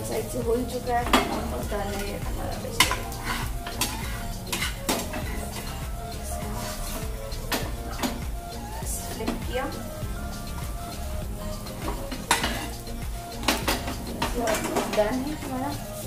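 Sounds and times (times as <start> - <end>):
food sizzling: 0.0 - 16.0
metal utensil scraping a pan: 1.0 - 5.8, 6.5 - 8.2, 11.5 - 16.0.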